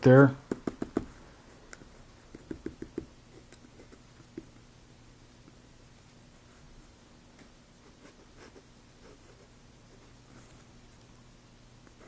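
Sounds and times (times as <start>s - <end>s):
pen nib scratching on paper: 2.2s - 4.5s.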